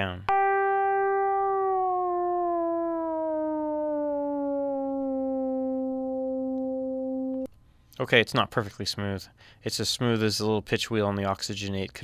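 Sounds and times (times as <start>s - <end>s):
synthesizer tone gliding lower: 0.3s - 7.5s.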